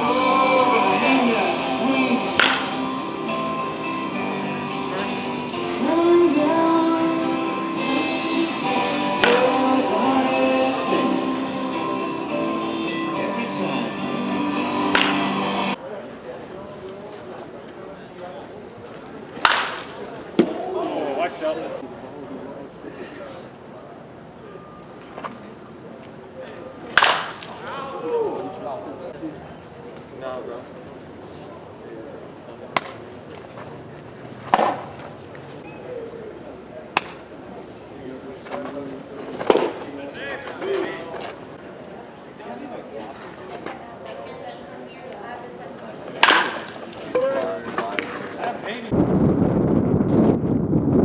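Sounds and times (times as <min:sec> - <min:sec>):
background chatter: 0:00.0 - 0:49.0
baseball bat striking ball: 0:02.3 - 0:03.0, 0:09.2 - 0:09.7, 0:14.9 - 0:15.4, 0:19.4 - 0:20.6, 0:26.9 - 0:27.6, 0:32.8 - 0:33.0, 0:34.5 - 0:34.8, 0:37.0 - 0:37.2, 0:46.2 - 0:46.8.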